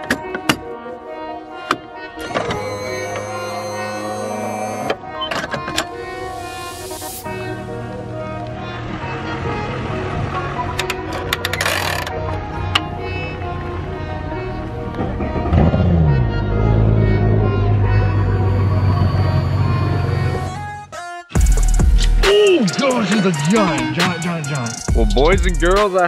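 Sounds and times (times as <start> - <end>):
background music: 0.0 - 26.0.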